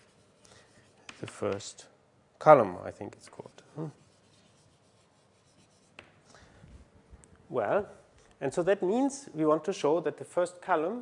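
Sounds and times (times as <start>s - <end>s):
chalk scratching on blackboard: 0.0s - 1.7s, 3.2s - 6.2s
chalk tap on blackboard: 1.0s - 1.8s, 5.6s - 6.2s.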